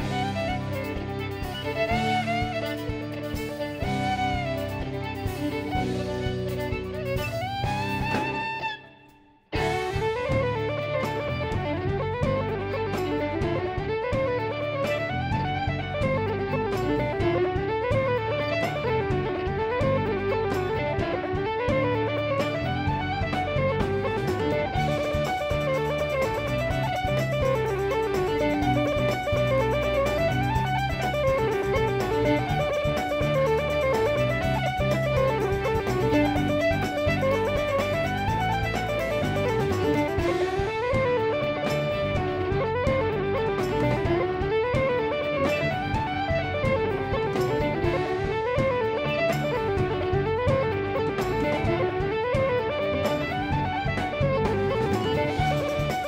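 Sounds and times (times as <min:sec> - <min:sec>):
drums and cymbals: 0:00.0 - 0:08.8, 0:09.6 - 0:56.0
electric bass: 0:00.0 - 0:56.0
fiddle melody: 0:00.0 - 0:56.0
guitar: 0:00.0 - 0:56.0.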